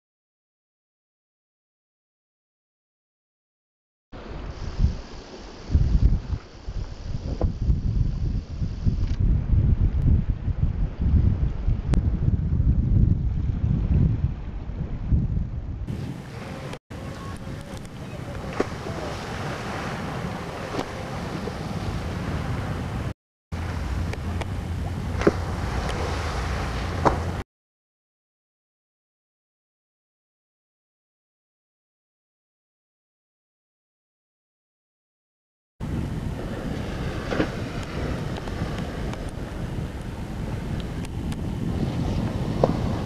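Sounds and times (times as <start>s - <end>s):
open water hiss: 4.2s - 9.2s, 23.6s - 27.4s
wind rumbling on microphone: 4.2s - 27.4s, 35.8s - 43.0s
low hum: 21.8s - 27.4s.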